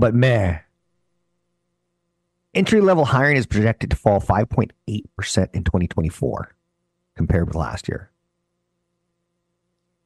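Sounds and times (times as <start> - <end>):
faint electrical hum: 0.0 - 10.0.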